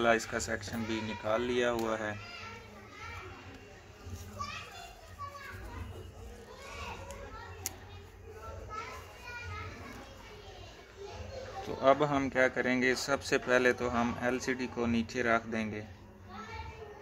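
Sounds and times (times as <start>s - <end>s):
children talking and playing: 0.0s - 17.0s.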